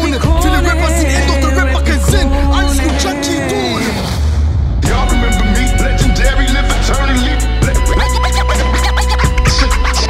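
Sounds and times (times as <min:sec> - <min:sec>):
heavy bass: 0:00.0 - 0:10.0
dj scratching: 0:04.9 - 0:10.0.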